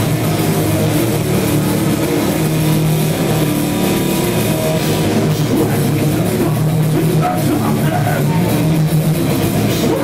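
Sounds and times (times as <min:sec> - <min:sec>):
distorted metal guitar drone: 0:00.0 - 0:10.0.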